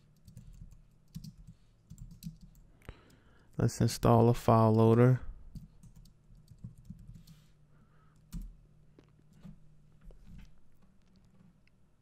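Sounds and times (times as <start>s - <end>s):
computer keyboard typing: 0.2s - 2.6s, 5.5s - 7.4s, 8.2s - 8.6s.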